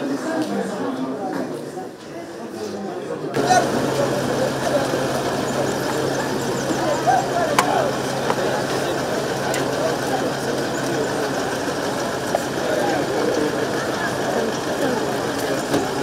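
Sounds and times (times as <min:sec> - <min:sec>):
crowd chatter: 0:00.0 - 0:16.0
vehicle engine idling: 0:03.4 - 0:16.0.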